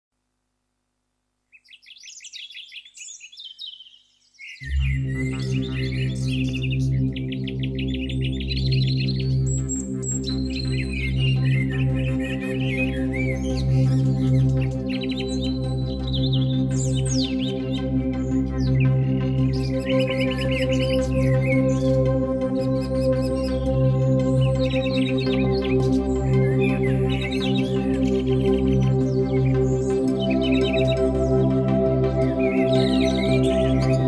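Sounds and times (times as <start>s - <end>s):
birds chirping and singing: 1.5s - 34.0s
ambient synthesizer pad: 4.6s - 34.0s.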